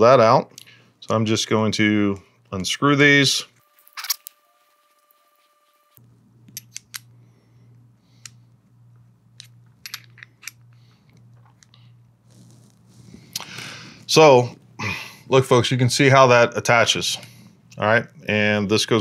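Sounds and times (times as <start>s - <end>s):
faint low hum: 0.0s - 19.0s
metal screws and wrench clicking: 9.4s - 10.6s.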